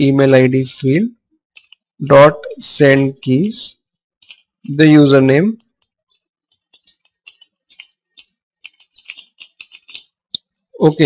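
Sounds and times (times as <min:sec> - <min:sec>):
keyboard typing clicks: 0:05.6 - 0:10.5.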